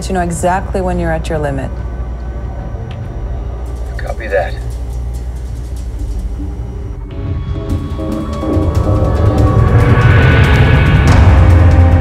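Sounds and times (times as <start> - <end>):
low soundtrack drone: 0.0 - 12.0
tense dramatic music: 0.0 - 12.0.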